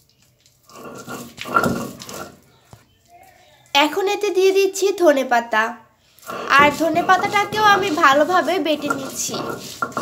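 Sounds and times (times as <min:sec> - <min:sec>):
stone roller grinding paste: 0:00.6 - 0:02.5, 0:06.2 - 0:10.0
roller knocking on stone: 0:00.7 - 0:02.4, 0:06.3 - 0:10.0.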